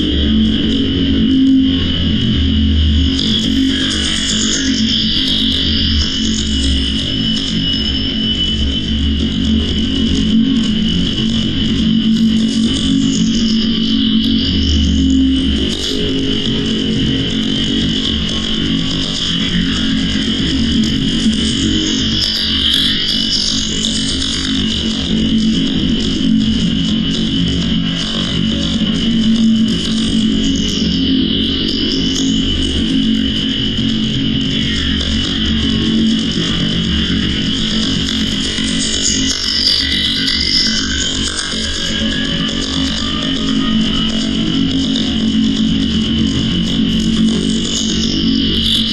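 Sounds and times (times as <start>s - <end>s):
distorted noise drone: 0.0s - 48.9s
harsh electronic noise music: 0.0s - 48.9s.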